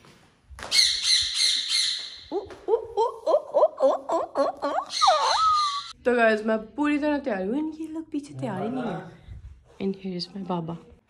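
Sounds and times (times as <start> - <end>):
high squeaky chirping cries: 4.6 - 6.0.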